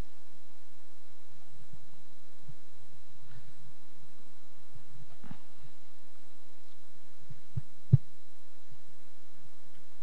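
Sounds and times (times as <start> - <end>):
steady low hum: 0.0 - 10.0
dull low thumps: 7.5 - 8.2.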